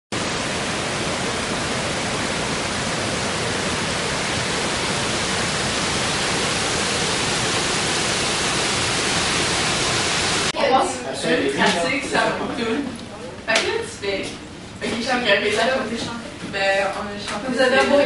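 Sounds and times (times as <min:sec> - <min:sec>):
water rushing over dam: 0:00.1 - 0:10.6.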